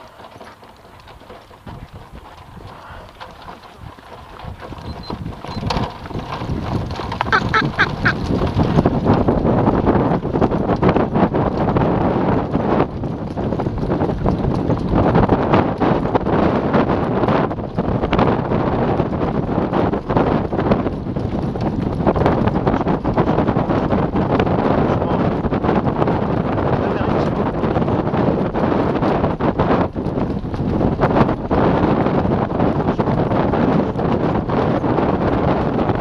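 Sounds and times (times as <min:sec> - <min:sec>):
cart rattling and knocking: 0:00.0 - 0:36.0
hooves on dirt track: 0:00.0 - 0:36.0
wind buffeting microphone: 0:00.0 - 0:36.0.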